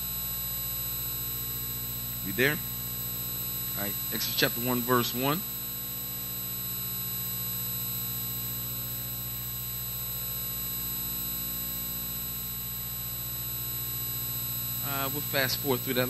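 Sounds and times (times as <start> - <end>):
electrical mains hum: 0.0 - 16.0
man speaking: 2.3 - 2.7, 3.8 - 5.4, 14.8 - 16.0.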